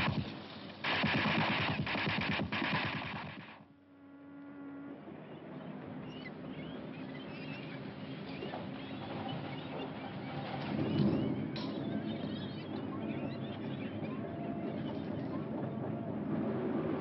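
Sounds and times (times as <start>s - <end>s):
loud noisy sound: 0.0s - 3.7s.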